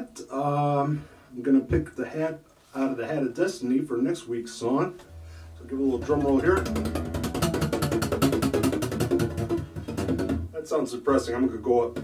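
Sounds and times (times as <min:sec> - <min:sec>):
acoustic guitar tremolo strumming: 0:05.0 - 0:10.6.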